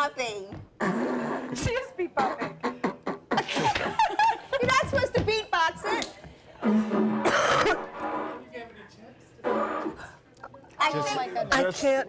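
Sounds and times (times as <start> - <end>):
didgeridoo toots: 6.6 - 8.5, 9.4 - 10.2.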